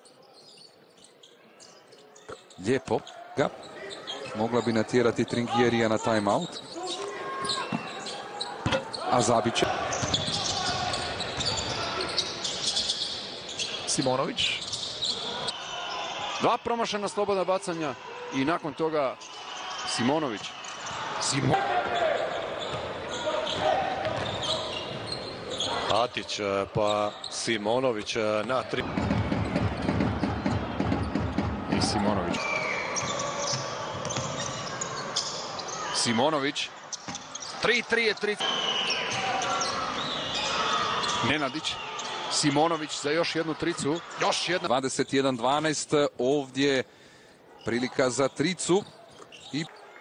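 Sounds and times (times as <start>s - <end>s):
murmur of crowd: 0.0s - 50.0s.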